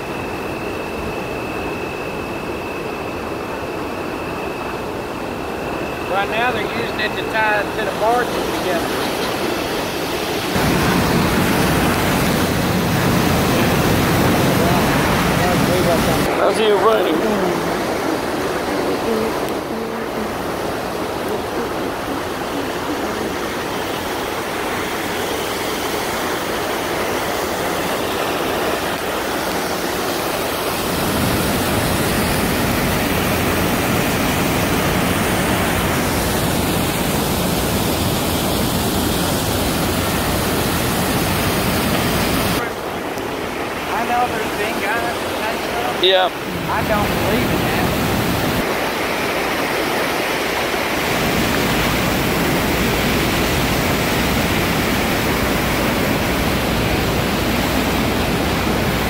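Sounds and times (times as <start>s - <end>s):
water rushing through dam gate: 5.7s - 59.0s.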